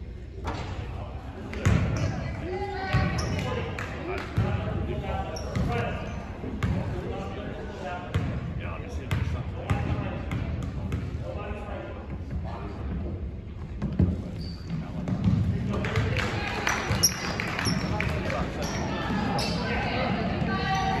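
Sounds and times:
people talking indistinctly: 0.0 - 21.0.

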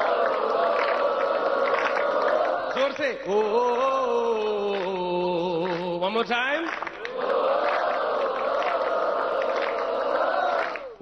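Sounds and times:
audience singing in unison: 0.0 - 5.7, 7.0 - 11.0.

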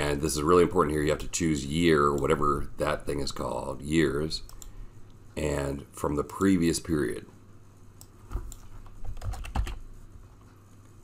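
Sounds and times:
keyboard typing: 8.0 - 9.8.

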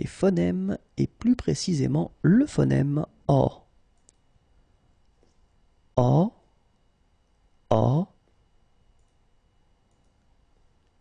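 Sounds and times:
spoken vowel: 0.0 - 3.7, 6.0 - 6.4, 7.7 - 8.2.

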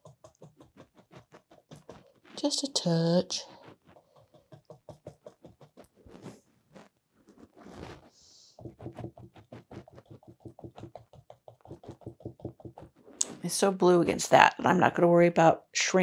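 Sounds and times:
paintbrush tapping on canvas: 3.6 - 5.9, 8.6 - 13.4.

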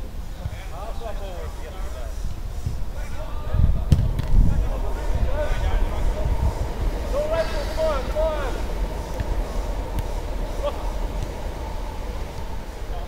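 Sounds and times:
low rumble: 2.6 - 13.0
footballers shouting: 3.0 - 13.0.

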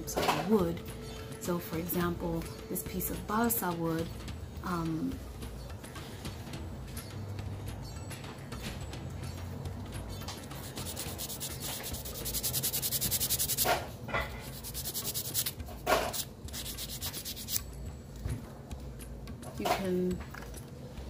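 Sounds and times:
nail file rasping on wood: 10.6 - 13.7, 14.5 - 15.5, 16.1 - 17.6.

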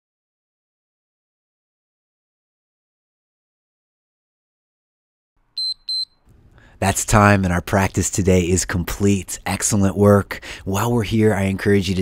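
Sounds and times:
short high electronic beeps: 5.6 - 6.2.

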